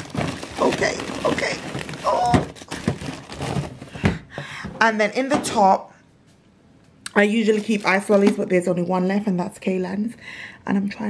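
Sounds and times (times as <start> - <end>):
frozen food bags rustling: 0.0 - 4.1, 7.2 - 8.7.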